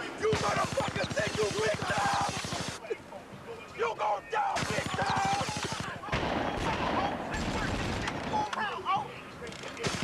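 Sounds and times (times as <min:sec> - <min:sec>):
voices shouting: 0:00.0 - 0:07.3
rapid gunfire: 0:00.3 - 0:02.8, 0:04.6 - 0:08.2.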